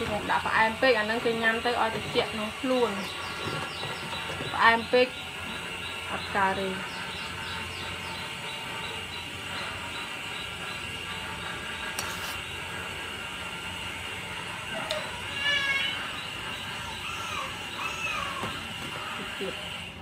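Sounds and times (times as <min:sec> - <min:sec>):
pot boiling: 0:00.0 - 0:20.0.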